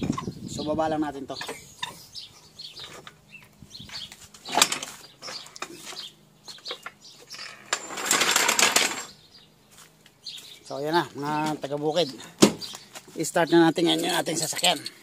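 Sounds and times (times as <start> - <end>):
car jack rattling: 7.3 - 9.1.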